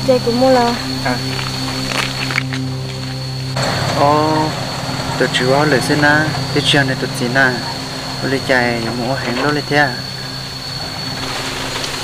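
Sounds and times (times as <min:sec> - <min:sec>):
background hum: 0:00.0 - 0:12.0
high-pitched whine: 0:00.0 - 0:12.0.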